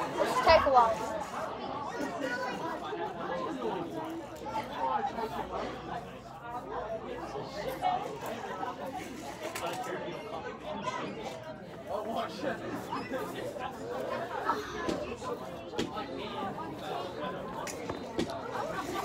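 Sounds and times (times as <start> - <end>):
children chattering: 0.0 - 19.0.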